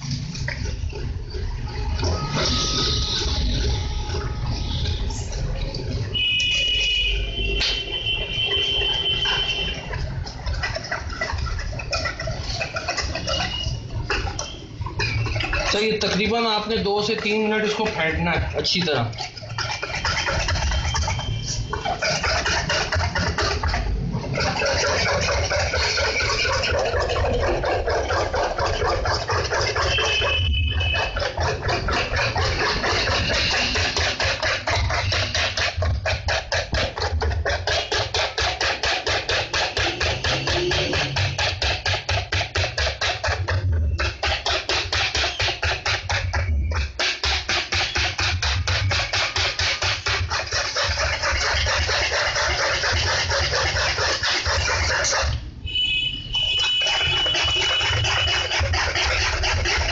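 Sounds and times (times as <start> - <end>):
utensil scraping a steel bowl: 0.0 - 55.4, 56.4 - 59.9.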